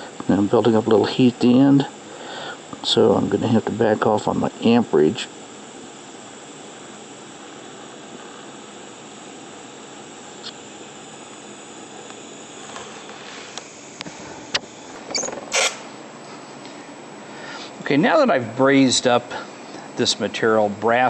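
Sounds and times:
welding arc hissing: 0.0 - 21.0.

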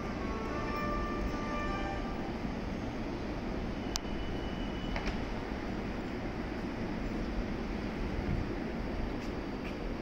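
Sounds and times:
standing train hum and rumble: 0.0 - 10.0.

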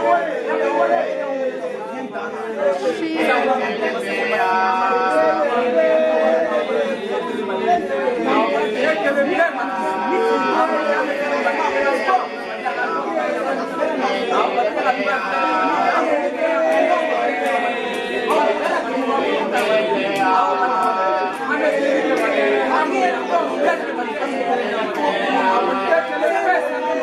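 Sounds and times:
children praying aloud together: 0.0 - 27.0.

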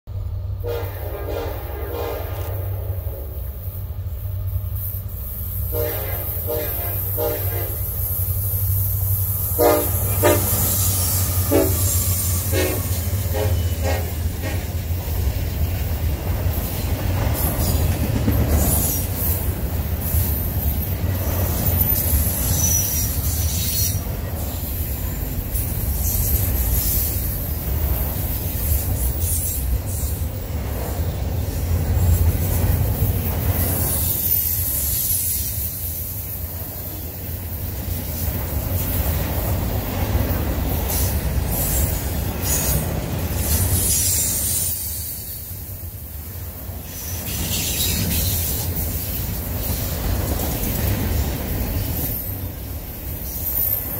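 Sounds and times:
train wheels rumbling on rails: 0.0 - 53.9
train horn blasts: 0.6 - 3.6, 5.6 - 8.0, 9.5 - 14.9
high wheel squeal: 7.8 - 14.8, 18.6 - 25.2, 51.0 - 53.9.

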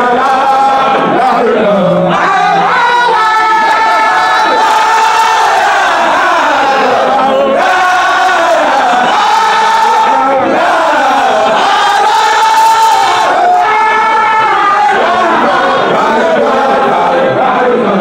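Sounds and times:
men chanting in unison: 0.0 - 18.0.

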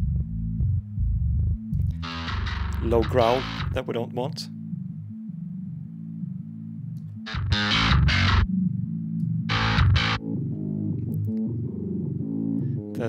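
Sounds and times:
distorted bass riff: 0.0 - 4.0, 7.0 - 8.8, 9.4 - 12.9.

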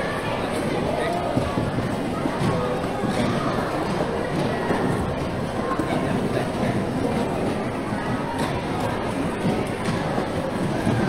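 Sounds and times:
clatter of hand-rolling tools: 0.0 - 11.0
hubbub of voices: 0.0 - 11.0.

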